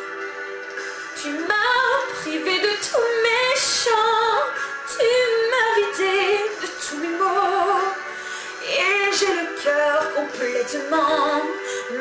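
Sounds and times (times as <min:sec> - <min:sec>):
woman singing with vibrato: 0:01.2 - 0:12.0.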